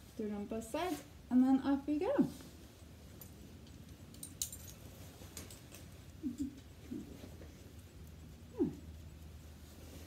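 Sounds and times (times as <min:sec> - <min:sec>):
faint metallic harness clinks: 0:02.8 - 0:07.0.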